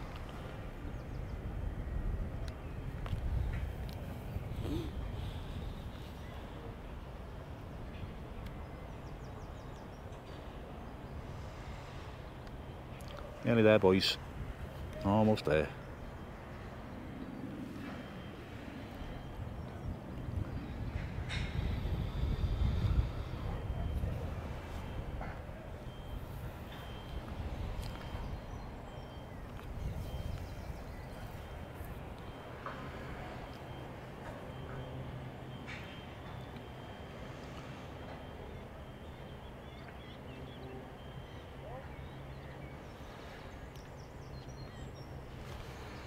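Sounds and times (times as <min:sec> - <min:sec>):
low outdoor background hum: 0:00.0 - 0:46.0.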